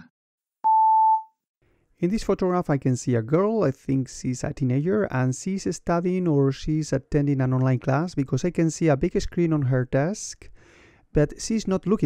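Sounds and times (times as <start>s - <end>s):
electronic beep: 0.7s - 1.3s.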